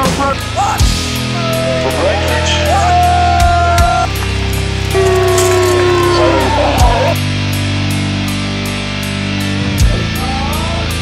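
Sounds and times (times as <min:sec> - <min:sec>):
bass guitar: 0:00.0 - 0:11.0
lead electric guitar notes: 0:01.0 - 0:08.3.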